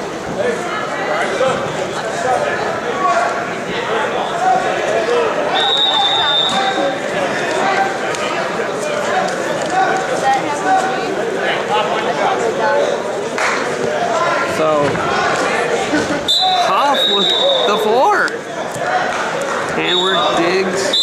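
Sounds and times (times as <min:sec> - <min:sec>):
crowd chattering in a hall: 0:00.0 - 0:21.0.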